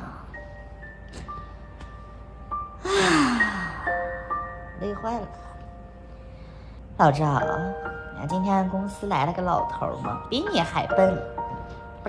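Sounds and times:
soft music with bell-like notes: 0.0s - 12.0s.

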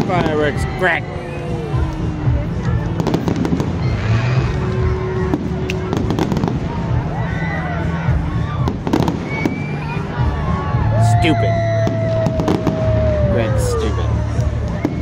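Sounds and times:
fireworks bursting with bangs: 0.0s - 7.4s, 8.2s - 10.4s, 11.6s - 13.3s, 14.3s - 15.0s.

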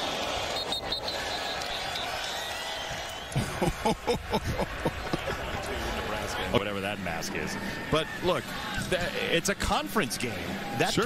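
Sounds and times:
stadium crowd noise: 0.0s - 11.0s
referee whistle: 0.1s - 3.4s.

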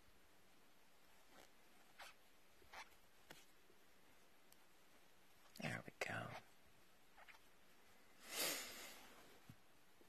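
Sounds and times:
woman whispering: 5.5s - 6.5s.

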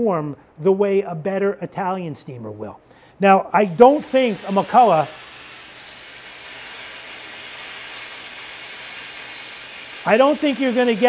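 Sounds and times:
steam cleaner hissing: 3.6s - 11.0s.

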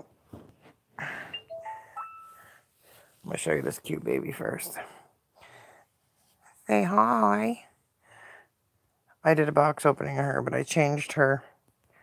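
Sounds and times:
smartphone chime: 1.2s - 2.6s.

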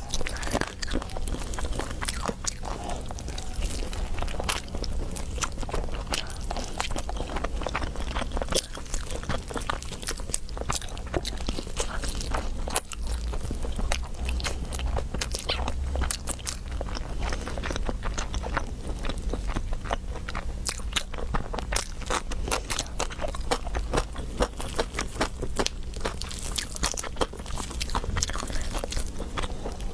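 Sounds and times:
chewing and crunching chicken: 0.0s - 29.9s
low steady hum: 0.0s - 29.9s.

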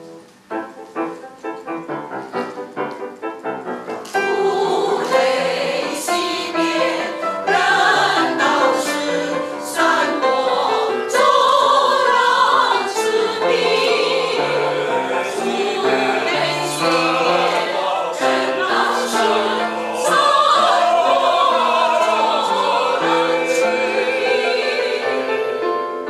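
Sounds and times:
mixed choir singing: 4.1s - 26.0s.

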